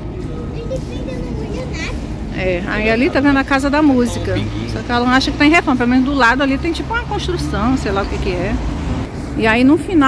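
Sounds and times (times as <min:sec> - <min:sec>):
faint voices: 0:00.0 - 0:08.6
traffic rumble: 0:00.0 - 0:10.0.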